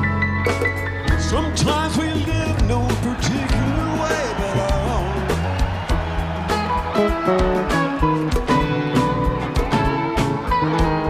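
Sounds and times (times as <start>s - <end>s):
electric guitar lead with bent notes: 0.0s - 11.0s
live rock band playing: 0.0s - 11.0s.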